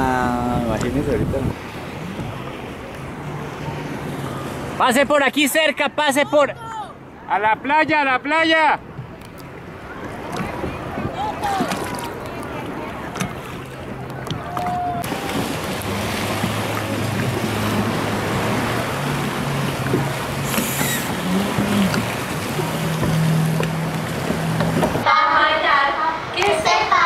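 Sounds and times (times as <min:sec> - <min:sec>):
jet ski engine: 0:00.0 - 0:07.6, 0:08.8 - 0:25.1
water rushing: 0:00.0 - 0:27.0
wind: 0:00.0 - 0:27.0.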